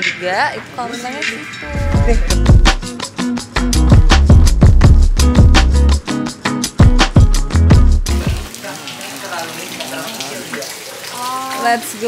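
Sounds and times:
background music with steady beat: 0.0 - 8.5.

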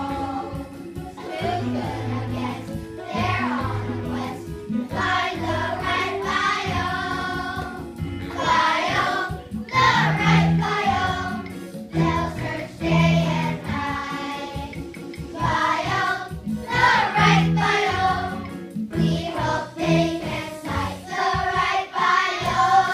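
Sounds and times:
children's choir singing: 0.0 - 22.9
music with steady beat: 0.0 - 22.9.

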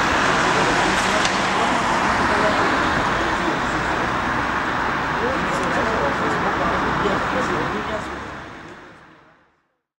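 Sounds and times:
street traffic noise: 0.0 - 9.9.

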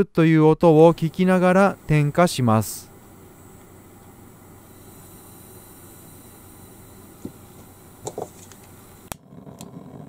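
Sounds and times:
gas hissing from burner: 0.6 - 10.0.

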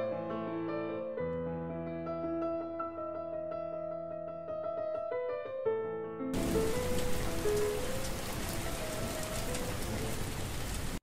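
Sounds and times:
soft piano notes: 0.0 - 11.0
steady rain: 6.4 - 11.0.

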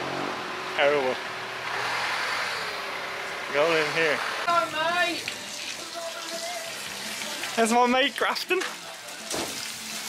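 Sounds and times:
water running from a hose: 3.5 - 10.0.

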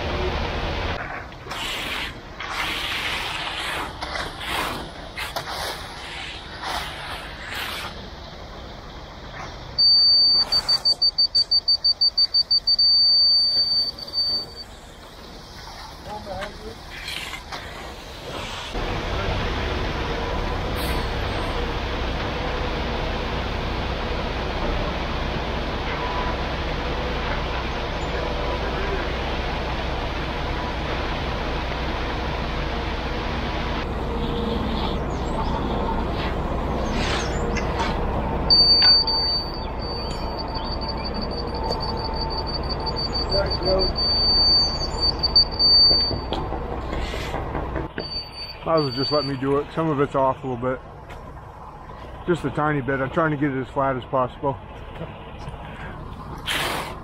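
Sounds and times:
hand tool scraping concrete: 1.5 - 8.0
truck engine running: 6.5 - 57.0
high-pitched electronic beeper: 9.8 - 14.8, 38.5 - 46.4, 48.0 - 49.5.

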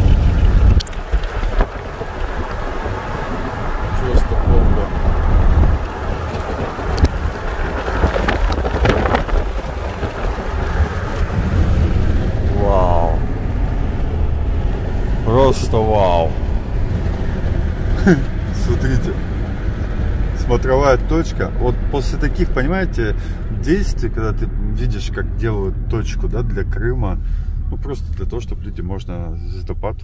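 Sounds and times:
wind buffeting microphone: 0.0 - 23.8
road noise rumble: 0.0 - 30.0.

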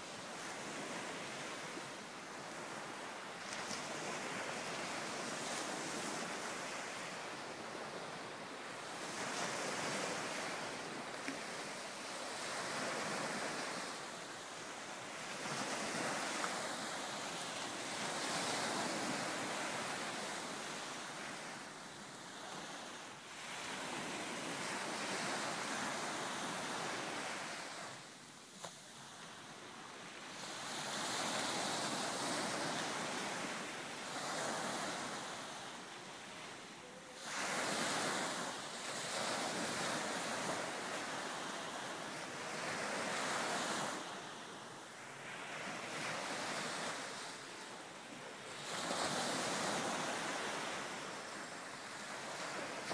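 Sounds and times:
rushing surf-like noise: 0.0 - 0.4.

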